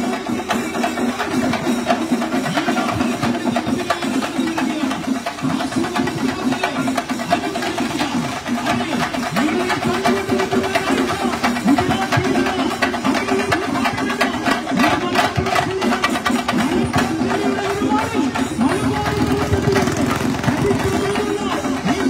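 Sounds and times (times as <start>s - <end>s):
group of drums beaten with sticks: 0.0s - 22.0s.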